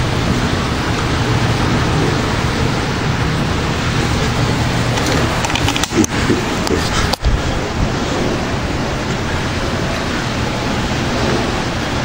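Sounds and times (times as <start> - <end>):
heavy rain pouring: 0.0 - 12.0
clicks: 4.9 - 7.3.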